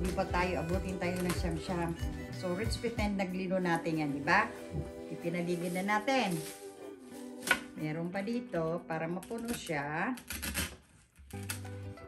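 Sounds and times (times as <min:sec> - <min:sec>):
background music with bass line: 0:00.0 - 0:07.8
scratchy rustling of flower stems: 0:05.1 - 0:07.5.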